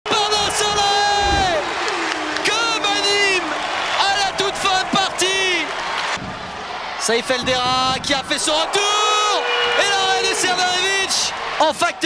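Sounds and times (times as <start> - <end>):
crowd cheering: 0.1 - 12.0.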